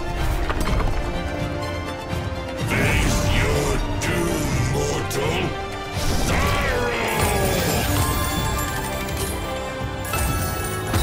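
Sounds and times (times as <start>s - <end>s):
slot game background music: 0.0s - 11.0s.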